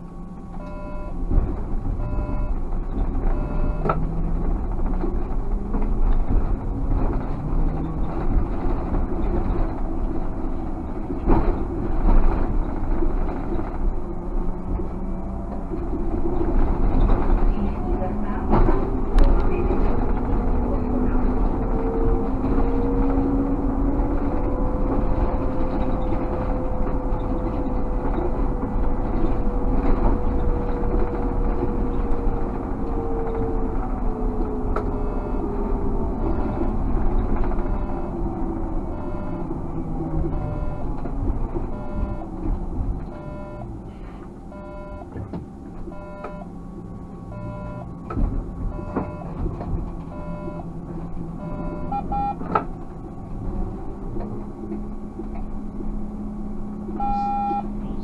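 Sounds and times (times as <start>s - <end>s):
short beeps: 0.6s - 1.2s, 2.0s - 2.6s, 3.3s - 3.9s, 38.9s - 39.5s, 44.5s - 45.1s, 45.9s - 46.5s, 47.3s - 47.9s, 48.7s - 49.3s, 50.1s - 50.6s, 51.4s - 52.4s, 57.0s - 58.0s
regular ticking in cab: 34.2s - 58.0s.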